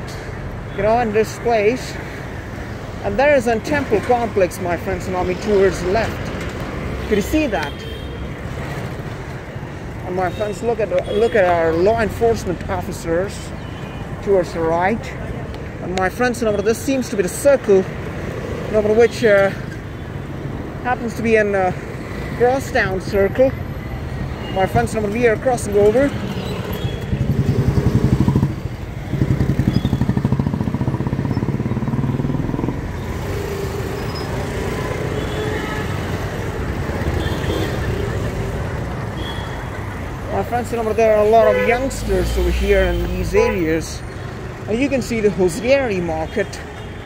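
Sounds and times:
street traffic rumble: 0:00.0 - 0:47.0
small motorcycle engines running: 0:25.8 - 0:35.5.

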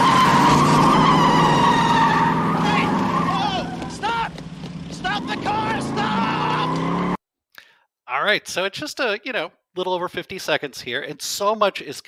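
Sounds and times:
people shouting: 0:00.0 - 0:04.4, 0:05.0 - 0:07.0
car engine running: 0:00.0 - 0:07.2
car tires squealing: 0:00.0 - 0:07.2.

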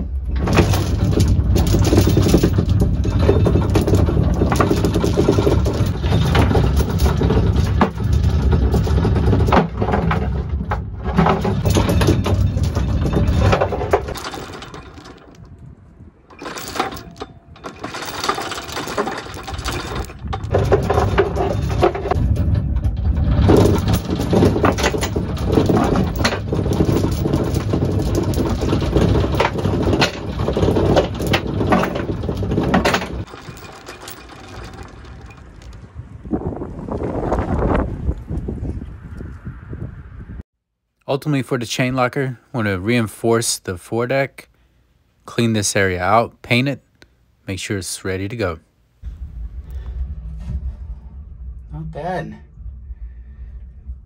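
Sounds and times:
anchor chain links rattling: 0:00.4 - 0:15.6, 0:16.3 - 0:35.9
anchor windlass motor running: 0:00.4 - 0:15.6, 0:16.2 - 0:38.3.

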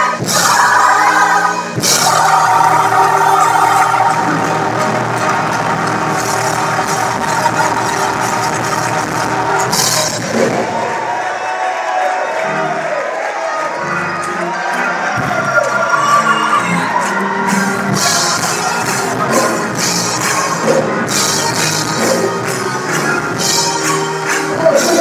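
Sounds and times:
choir singing gospel song: 0:00.0 - 0:13.0, 0:14.4 - 0:25.0
musical accompaniment: 0:00.0 - 0:25.0.

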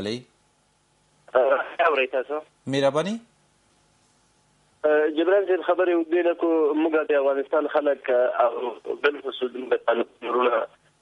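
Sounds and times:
person talking over telephone line: 0:04.8 - 0:10.8.

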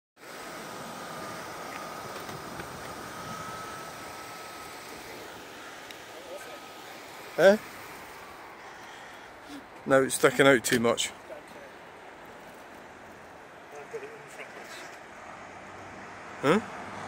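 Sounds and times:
faint high whine: 0:00.2 - 0:15.1
distant traffic: 0:00.2 - 0:17.0.

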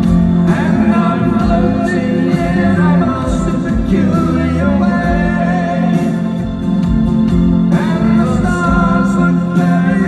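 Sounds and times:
live rock band playing: 0:00.0 - 0:10.0
person singing lead vocal: 0:00.3 - 0:06.6, 0:07.6 - 0:10.0.

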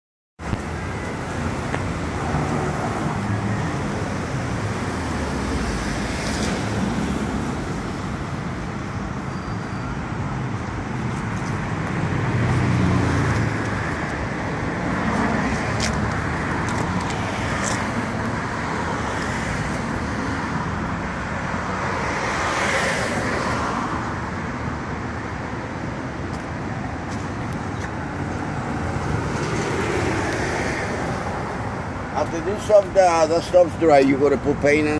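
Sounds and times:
street traffic with vehicles passing: 0:00.4 - 0:34.9.

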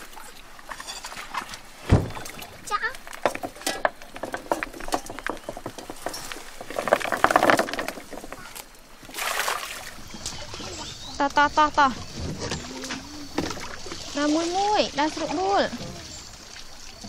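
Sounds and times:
clams clattering on wooden deck: 0:00.7 - 0:08.8.

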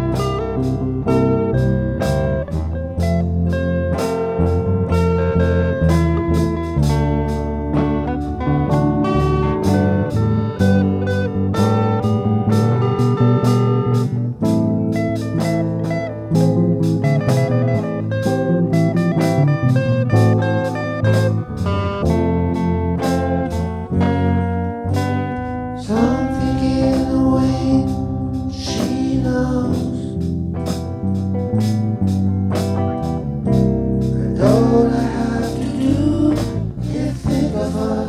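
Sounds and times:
bass: 0:00.0 - 0:38.0
drums: 0:00.0 - 0:38.0
electric guitar solo: 0:00.0 - 0:38.0.

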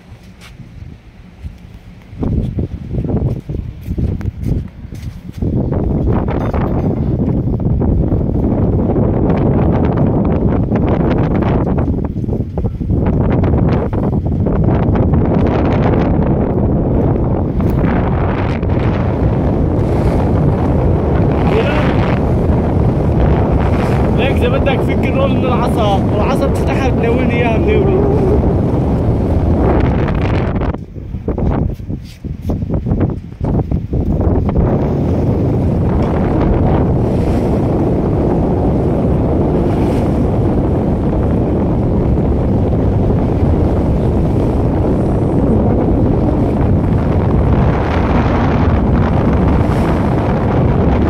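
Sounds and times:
sea rushing: 0:00.0 - 0:51.0
wind buffeting microphone: 0:00.0 - 0:51.0.

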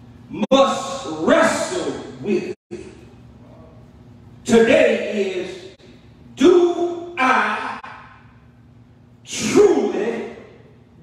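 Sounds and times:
man speaking into a microphone: 0:00.3 - 0:03.7, 0:04.4 - 0:05.8, 0:06.4 - 0:08.0, 0:09.3 - 0:10.6.

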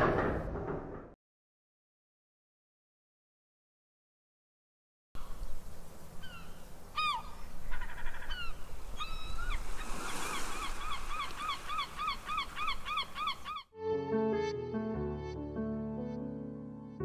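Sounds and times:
gull calling: 0:06.2 - 0:13.7
surf: 0:09.1 - 0:13.4
piano music: 0:13.8 - 0:17.0.

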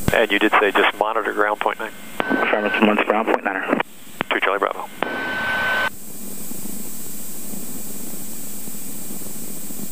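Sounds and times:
radio hiss with whistle tone: 0:00.1 - 0:05.9.

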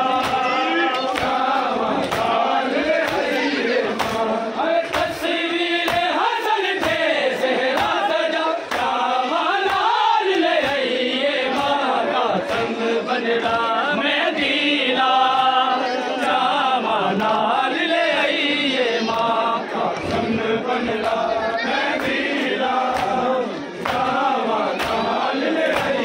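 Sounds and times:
men chanting a lament: 0:00.0 - 0:26.0
hands slapping bare chests: 0:00.1 - 0:03.3, 0:03.9 - 0:05.2, 0:05.8 - 0:06.2, 0:06.8 - 0:08.1, 0:08.7 - 0:09.0, 0:09.6 - 0:10.0, 0:21.8 - 0:26.0.

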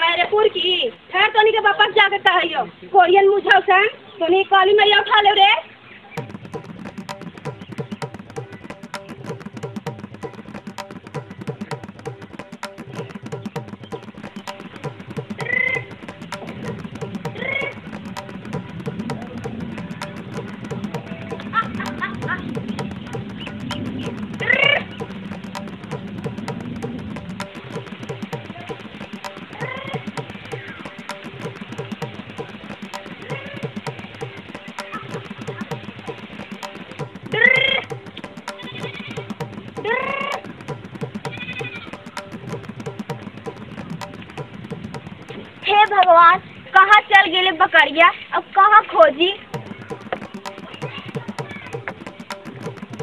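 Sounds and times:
background music with percussion: 0:06.1 - 0:47.0, 0:49.1 - 0:53.0.

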